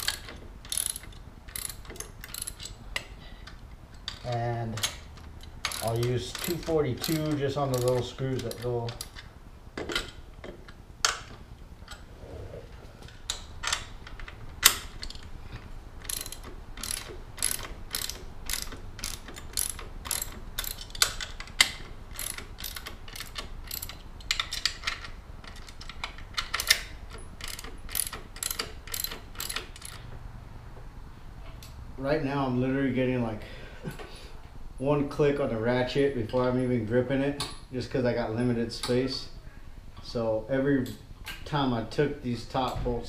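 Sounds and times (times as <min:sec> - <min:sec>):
hand ratchet clicking: 0:00.0 - 0:12.0, 0:13.3 - 0:30.1.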